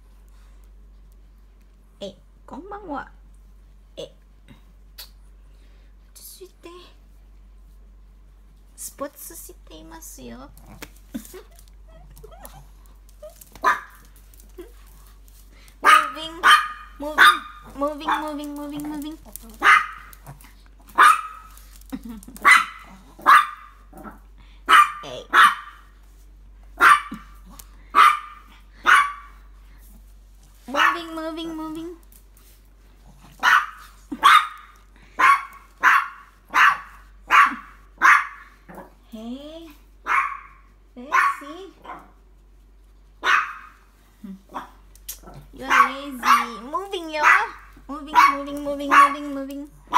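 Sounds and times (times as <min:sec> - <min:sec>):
small dog barking: 0:13.6 - 0:14.0, 0:15.8 - 0:19.0, 0:19.6 - 0:21.6, 0:22.4 - 0:25.9, 0:26.8 - 0:29.4, 0:30.7 - 0:31.2, 0:33.4 - 0:38.9, 0:40.0 - 0:42.2, 0:43.2 - 0:43.8, 0:44.5 - 0:49.9.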